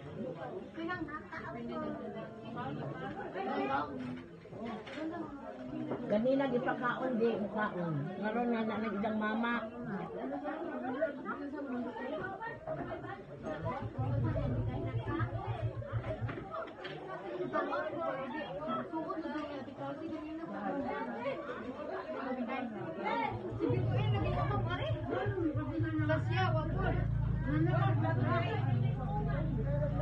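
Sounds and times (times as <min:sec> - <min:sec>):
people chattering: 0:00.0 - 0:30.0.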